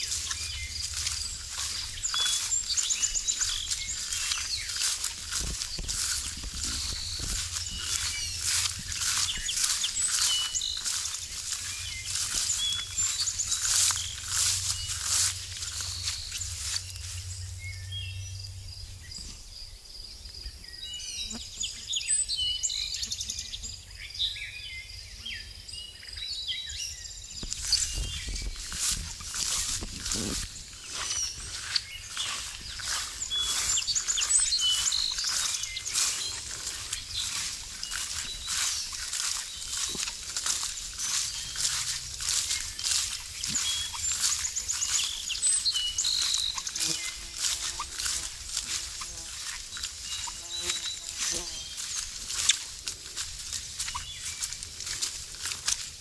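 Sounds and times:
footsteps swishing through grass: 0.0 - 17.7, 27.4 - 56.0
birds calling and singing: 0.0 - 56.0.

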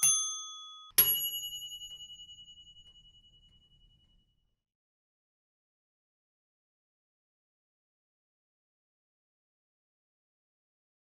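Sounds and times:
bell-like dings: 0.0 - 4.5.

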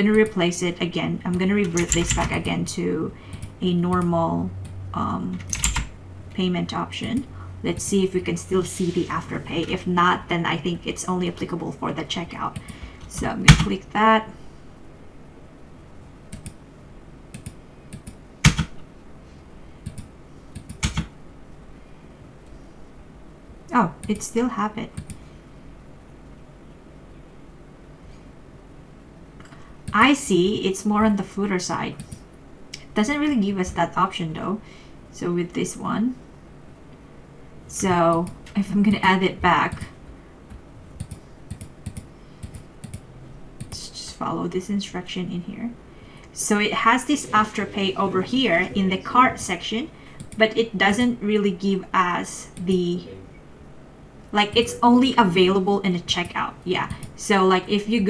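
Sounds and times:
computer keyboard and mouse clicks: 1.3 - 2.6, 5.4 - 5.9, 16.3 - 16.6, 17.3 - 18.8, 19.8 - 21.1, 25.0 - 25.2, 41.0 - 43.0, 43.6 - 43.8.

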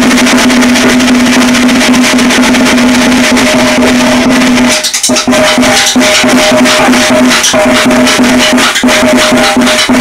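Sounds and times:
drum kit played fast: 0.0 - 10.0.

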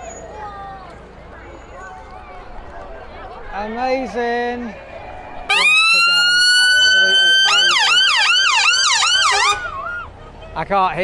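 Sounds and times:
ambulance siren: 5.5 - 10.1.

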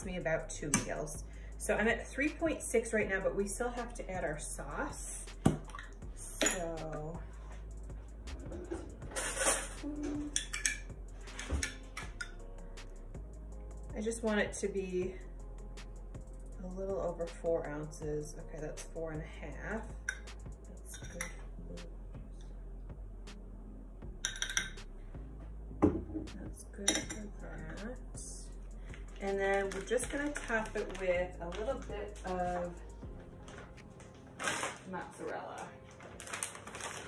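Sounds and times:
metal spoon clinking on glass: 10.4 - 10.8, 24.2 - 24.8.

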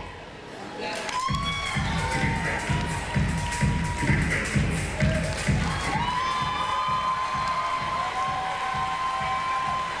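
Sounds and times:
audience cheering: 1.1 - 10.0
dance music: 1.2 - 10.0.

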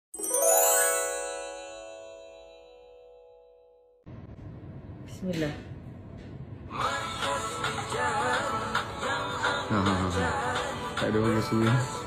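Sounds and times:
bell-like chime chord: 0.1 - 4.1.

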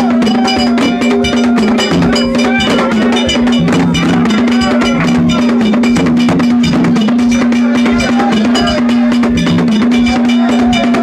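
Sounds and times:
cowbell-like metal strikes: 0.0 - 11.0
dense percussion music: 0.0 - 11.0
voices gliding: 0.0 - 11.0.

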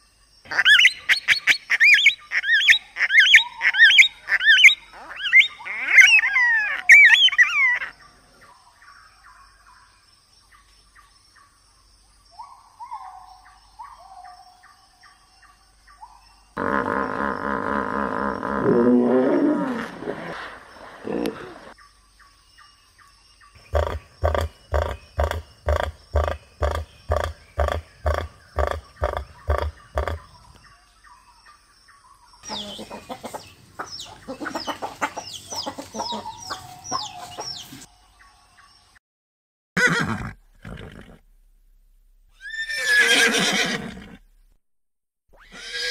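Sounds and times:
horse whinnying: 16.6 - 21.8, 39.8 - 41.2, 42.4 - 44.2, 45.4 - 45.9
pulsing animal calls: 23.6 - 30.4
chickens clucking and squawking: 32.4 - 37.9.

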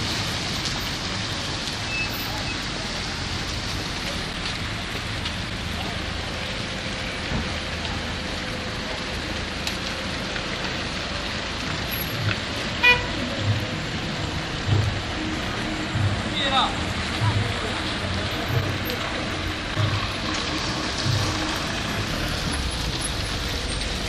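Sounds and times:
car engines passing: 0.0 - 24.0
tyres through wet snow: 0.0 - 24.0
car horn toot: 12.8 - 13.2.

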